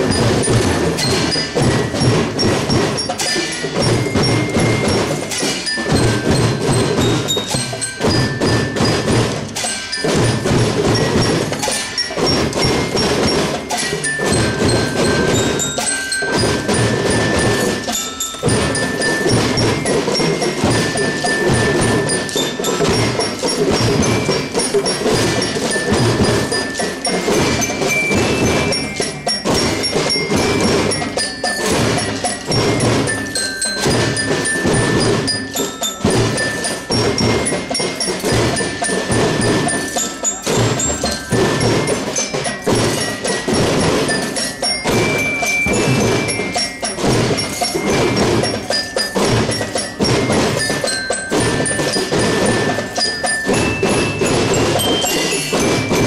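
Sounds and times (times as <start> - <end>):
glockenspiel melody: 0.0 - 56.0
snare and bass drums: 0.0 - 56.0.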